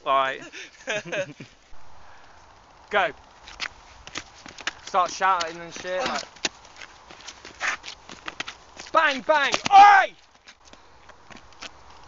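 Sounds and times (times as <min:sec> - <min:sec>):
footsteps running on wet tarmac: 0:03.5 - 0:09.7.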